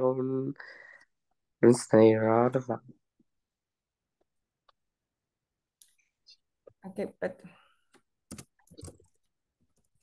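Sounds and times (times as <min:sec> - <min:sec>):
computer mouse clicks: 0:07.9 - 0:10.0.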